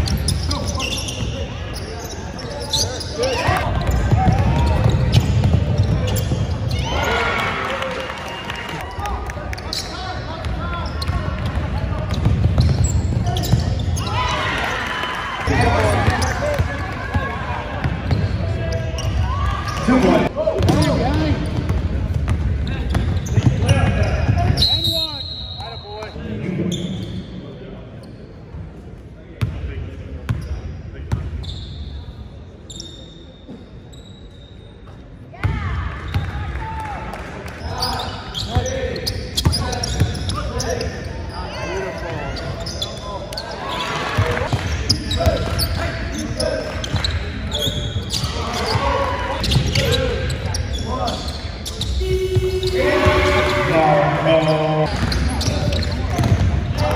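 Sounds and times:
ball bouncing on hardwood court: 3.8s - 6.6s, 10.4s - 13.8s, 54.9s - 56.9s
people calling out and talking: 37.6s - 56.9s.

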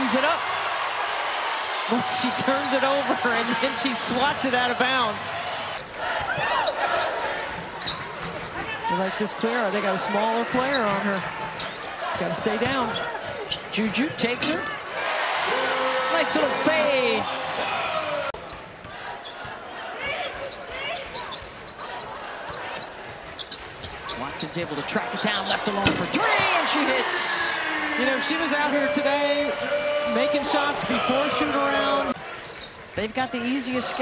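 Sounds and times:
arena crowd noise: 0.0s - 34.0s
sneakers squeaking on hardwood: 6.0s - 9.1s, 10.4s - 14.7s, 20.2s - 26.5s, 32.0s - 33.0s.

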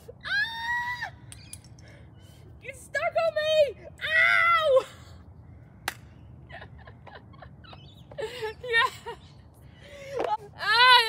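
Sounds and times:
woman laughing and whimpering: 6.5s - 10.9s.

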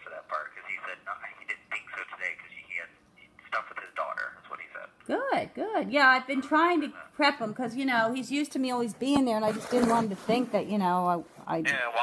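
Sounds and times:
person talking over telephone: 0.0s - 5.1s.

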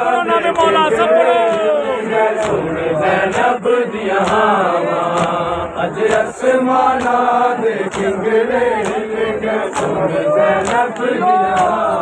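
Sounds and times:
men chanting in unison: 0.0s - 12.0s
chest-beating slaps: 2.3s - 12.0s.

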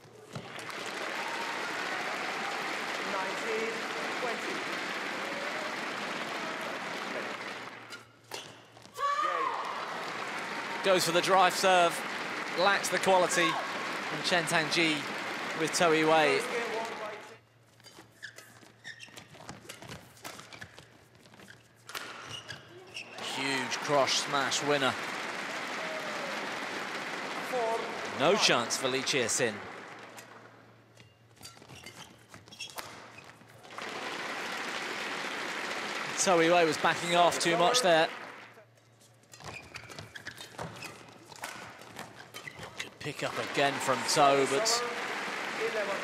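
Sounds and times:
shoes squeaking: 7.7s - 9.0s, 17.5s - 23.6s, 30.2s - 33.8s, 38.8s - 43.0s
commentary speech: 10.8s - 17.4s, 23.2s - 25.0s, 27.4s - 29.7s, 36.1s - 38.2s, 42.9s - 46.0s
rackets hitting shuttlecock: 21.9s - 22.3s.

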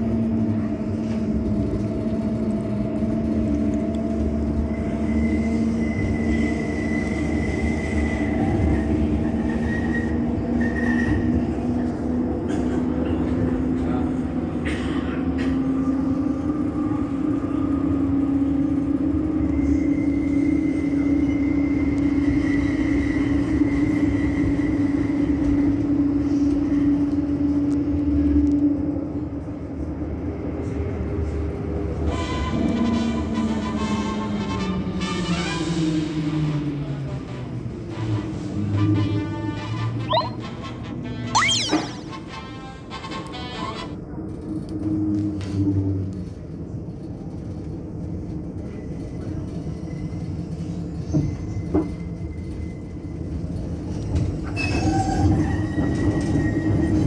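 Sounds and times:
tram electrical hum: 0.0s - 57.0s.

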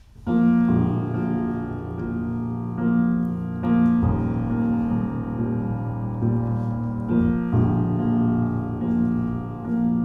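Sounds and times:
grand piano slow chords: 0.0s - 10.0s.

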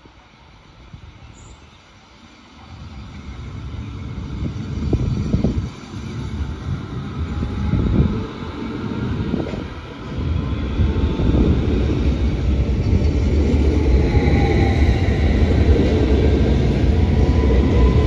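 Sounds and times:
train wheels rumbling on rails: 0.0s - 18.0s.

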